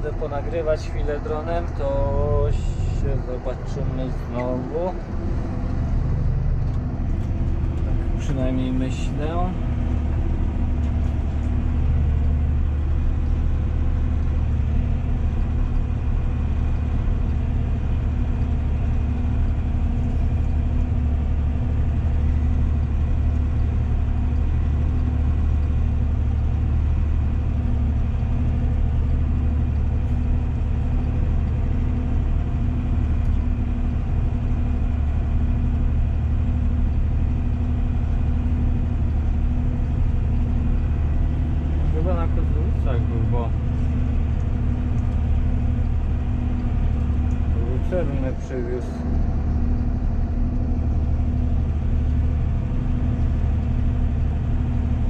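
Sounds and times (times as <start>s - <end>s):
tractor diesel engine drone: 0.0s - 55.0s.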